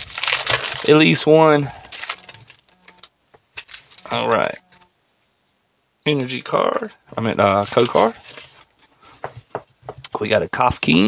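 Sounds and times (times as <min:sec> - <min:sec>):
foil wrapper crinkling: 0:00.0 - 0:04.1, 0:07.4 - 0:08.8.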